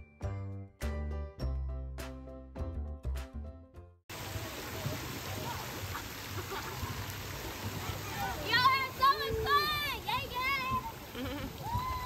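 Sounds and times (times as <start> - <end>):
water splashing: 4.1 - 12.0
faint children's voices: 7.6 - 11.1.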